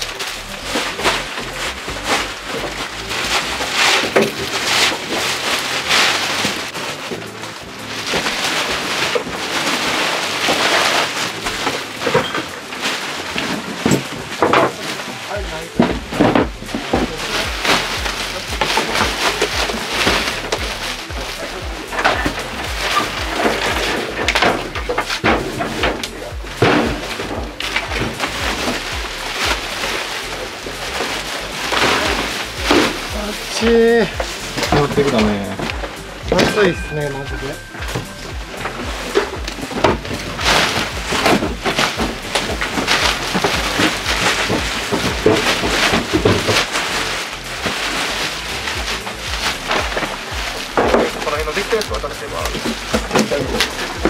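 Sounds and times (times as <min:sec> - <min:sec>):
objects knocking and clattering: 0:00.0 - 0:54.0
plastic bags rustling: 0:00.0 - 0:54.0.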